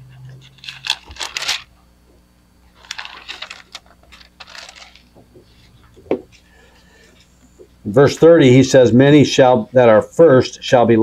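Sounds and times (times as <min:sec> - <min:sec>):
pages rustling: 0:00.2 - 0:01.7, 0:02.7 - 0:06.0.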